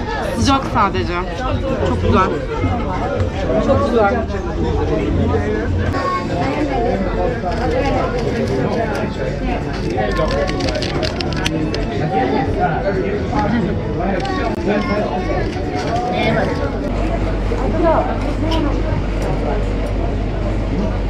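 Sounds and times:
people talking: 0:00.0 - 0:21.0.

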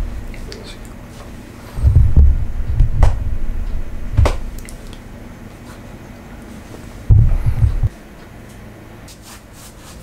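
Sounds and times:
microphone handling thumps: 0:01.8 - 0:04.6, 0:07.0 - 0:07.9.

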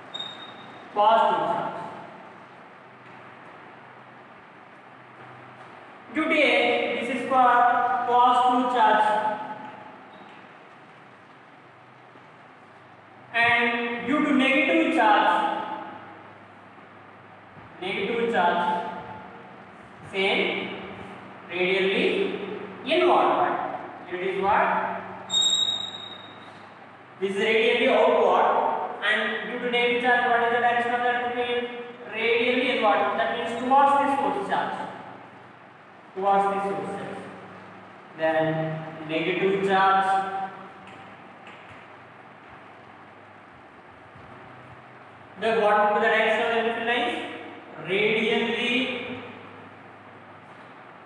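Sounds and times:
chalk squeaking on blackboard: 0:25.3 - 0:26.6.

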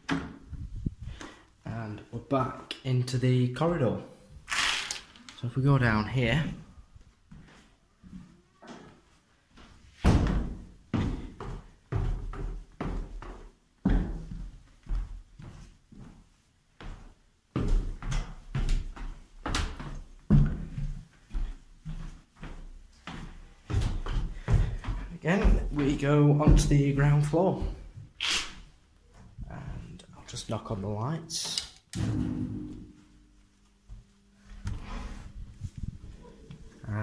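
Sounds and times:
footsteps going down stairs: 0:06.4 - 0:31.0, 0:32.6 - 0:37.0.

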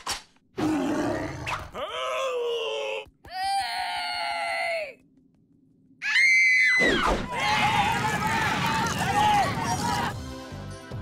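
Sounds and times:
shrill high-pitched scream: 0:06.0 - 0:07.8
cartoon drawn-out yells: 0:06.0 - 0:10.1.

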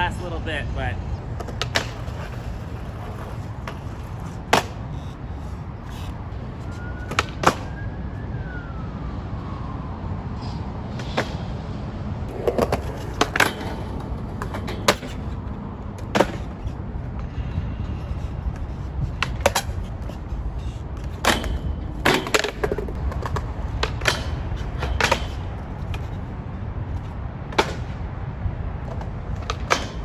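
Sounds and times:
skateboard clacks on concrete: 0:01.4 - 0:06.0, 0:12.3 - 0:15.4, 0:16.0 - 0:16.7, 0:21.0 - 0:26.2.

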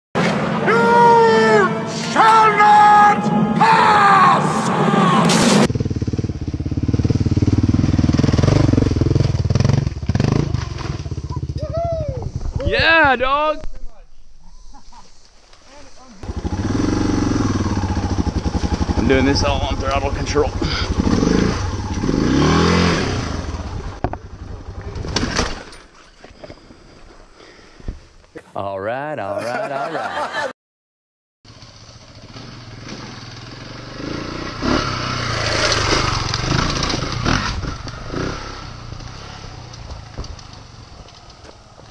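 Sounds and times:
man shouting: 0:00.6 - 0:05.4, 0:11.6 - 0:13.6
motorcycle engine climbing: 0:05.3 - 0:28.5, 0:31.5 - 0:41.9.

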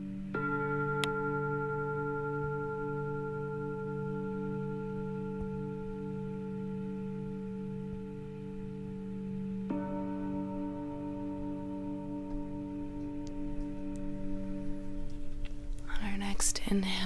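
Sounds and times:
singing bowl ringing: 0:00.0 - 0:16.0
low steady drone: 0:00.0 - 0:17.0.

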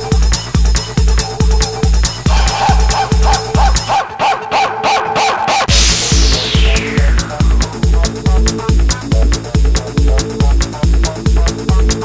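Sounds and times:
pounding kick drum: 0:00.0 - 0:03.9, 0:05.7 - 0:12.0
rapid chirping synth stabs: 0:00.1 - 0:11.9.

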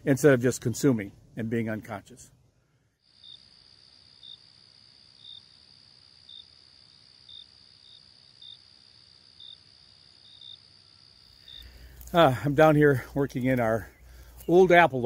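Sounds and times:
insect chirp: 0:02.9 - 0:12.3
insect high-pitched trill: 0:03.0 - 0:12.3.

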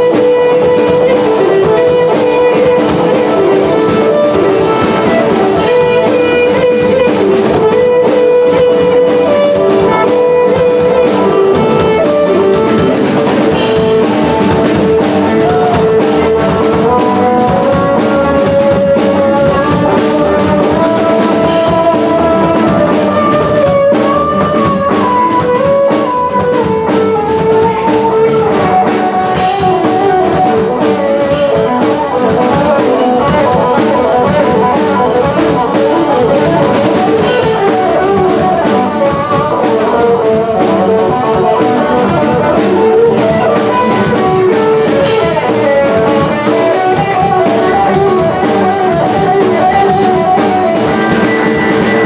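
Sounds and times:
drum kit: 0:00.0 - 0:52.0
electric guitar melody: 0:00.0 - 0:52.0.

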